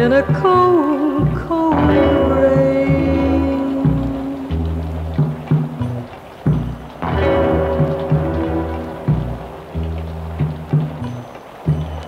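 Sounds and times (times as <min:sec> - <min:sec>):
low sustained backing notes: 0:00.0 - 0:12.0.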